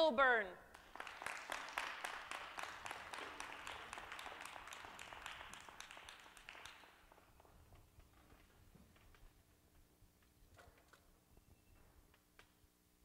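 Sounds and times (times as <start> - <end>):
small group clapping: 0.7 - 8.5.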